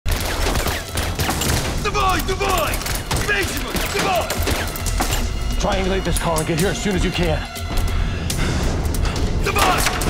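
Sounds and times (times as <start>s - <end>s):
rapid gunfire: 0.1s - 4.7s
man shouting: 9.4s - 10.0s.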